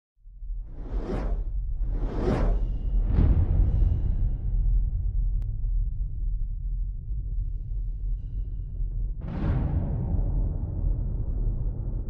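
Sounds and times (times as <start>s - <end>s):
deep steady rumble: 0.4s - 12.0s.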